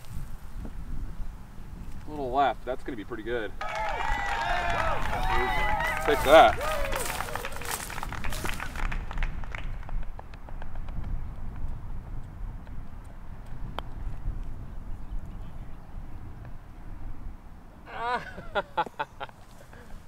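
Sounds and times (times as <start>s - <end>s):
wind rumbling on microphone: 0.0s - 18.6s
footsteps on dry turf: 5.9s - 8.8s.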